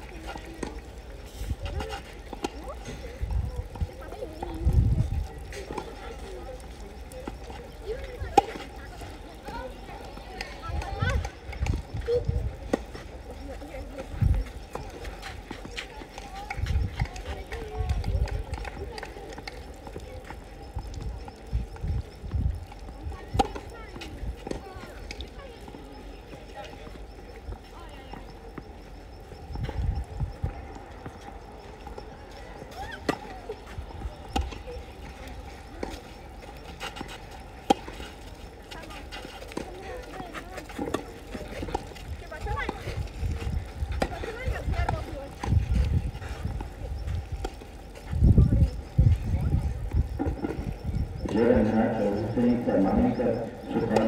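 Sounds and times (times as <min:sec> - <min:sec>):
distant voices: 0:00.0 - 0:54.0
wind rumble on microphone: 0:03.0 - 0:05.6, 0:10.6 - 0:12.8, 0:14.0 - 0:14.9, 0:16.4 - 0:19.0, 0:20.7 - 0:24.9, 0:29.3 - 0:31.5, 0:41.6 - 0:52.6.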